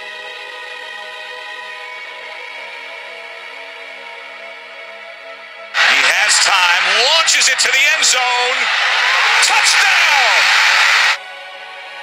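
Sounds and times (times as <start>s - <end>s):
background music: 0.0s - 10.4s, 11.2s - 12.0s
man commentating excitedly: 5.8s - 11.2s.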